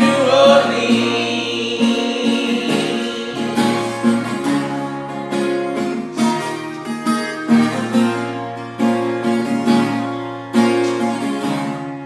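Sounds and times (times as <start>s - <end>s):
group of people singing: 0.0s - 5.0s
acoustic guitar strummed: 0.0s - 12.0s.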